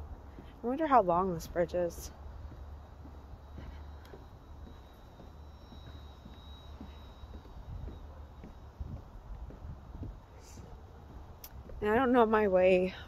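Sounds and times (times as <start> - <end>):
footsteps on footbridge: 0.0 - 12.5.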